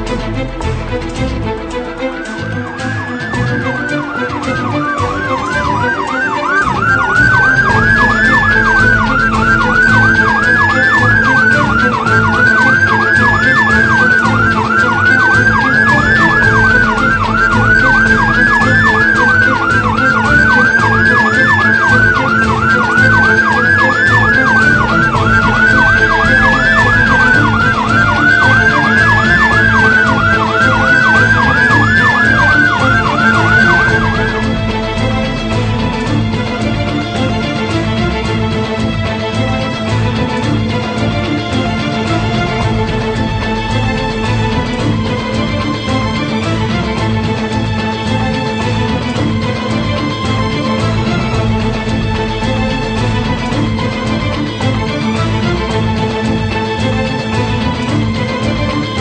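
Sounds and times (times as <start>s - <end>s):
electronic siren wailing: 2.0s - 38.4s.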